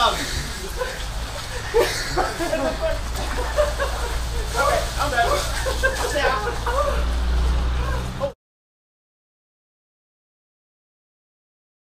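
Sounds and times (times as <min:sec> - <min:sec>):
men laughing and exclaiming: 0:00.0 - 0:08.4.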